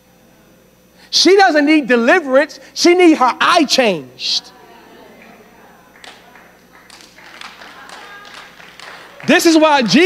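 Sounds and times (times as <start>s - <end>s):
faint voices responding: 4.1s - 10.0s
scattered claps: 5.2s - 10.0s.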